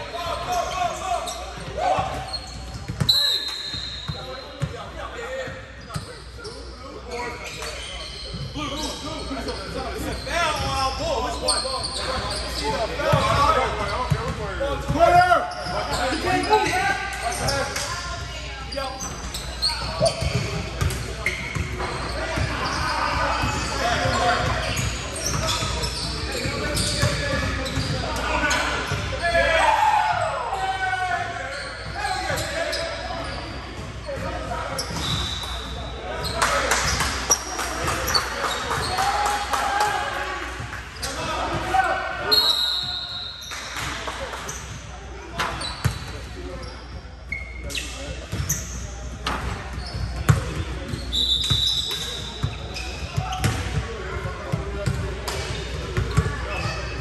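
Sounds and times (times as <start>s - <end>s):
players' voices: 0.0s - 57.0s
sneaker squeaks: 0.1s - 29.5s, 30.5s - 39.2s, 40.6s - 57.0s.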